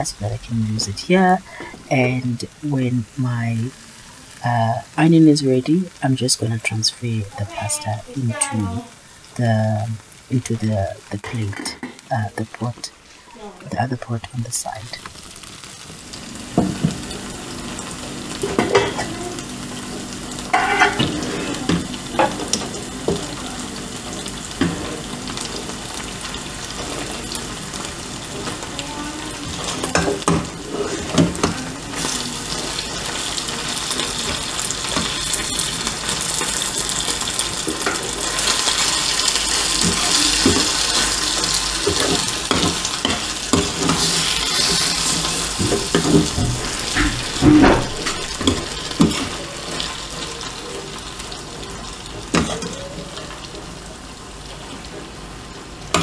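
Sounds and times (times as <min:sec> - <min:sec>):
sizzling in a pot: 0:00.0 - 0:56.0.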